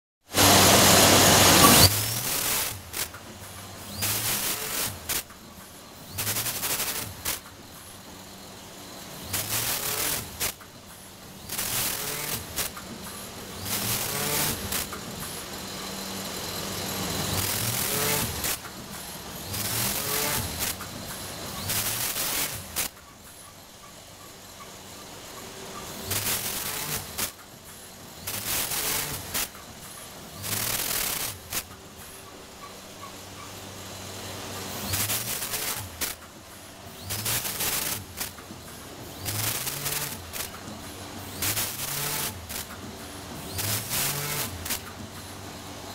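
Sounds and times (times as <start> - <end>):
short loud machine bursts: 0.3 - 3.1, 9.3 - 10.6, 16.9 - 18.7, 30.4 - 31.7, 37.0 - 38.3, 39.1 - 40.6, 41.3 - 42.7, 43.4 - 44.9
packaging machine hum: 0.3 - 45.9.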